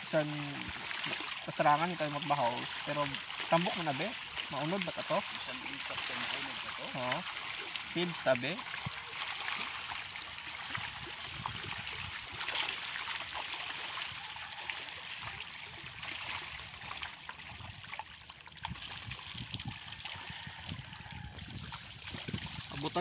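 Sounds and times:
fish splashing at water surface: 0.0 - 23.0.

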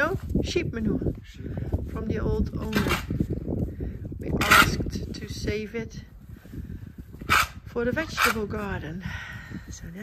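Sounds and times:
tool scraping and digging manure: 2.4 - 3.4, 4.2 - 5.3, 7.1 - 8.8.

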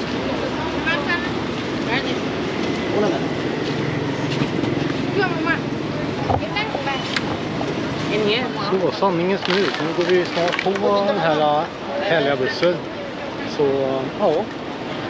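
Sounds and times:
people talking: 0.0 - 3.3, 5.0 - 7.2, 8.1 - 14.5.

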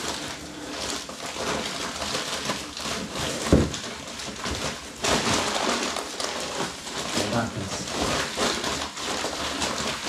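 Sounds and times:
cement powder pouring into basin: 0.0 - 1.2.

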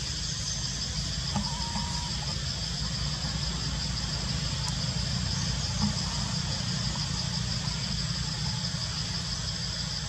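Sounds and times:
constant high-pitched hiss: 0.0 - 10.0.

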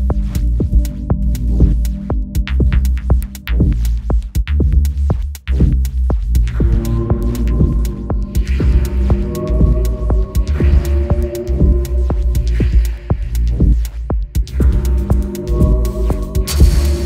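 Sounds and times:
deep sub-bass throb: 0.0 - 17.0
soft ticking percussion: 0.0 - 17.0.

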